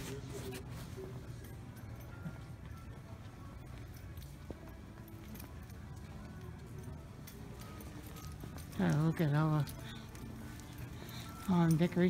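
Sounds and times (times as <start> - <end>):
faint distant sounds: 0.0 - 12.0.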